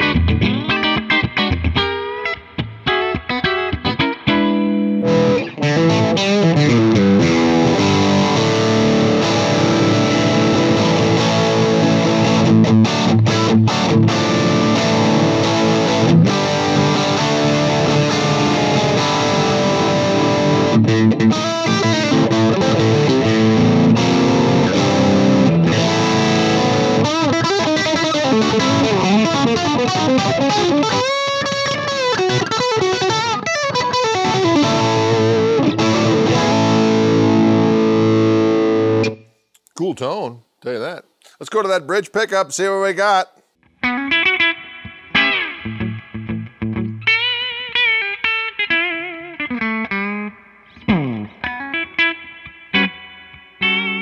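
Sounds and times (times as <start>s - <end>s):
electric guitar through amplifier: 0.0s - 39.2s, 43.7s - 54.0s.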